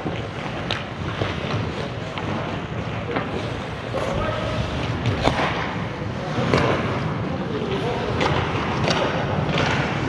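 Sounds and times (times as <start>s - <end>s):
hockey sticks and puck clicking: 0.0s - 4.2s, 4.8s - 10.0s
skates rushing on ice: 0.0s - 10.0s.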